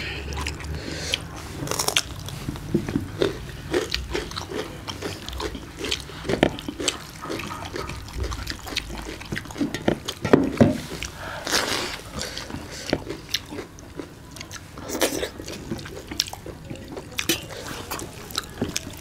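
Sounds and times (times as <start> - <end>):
hands squishing food on metal plates: 0.0 - 19.0
chewing and mouth smacks: 0.3 - 19.0.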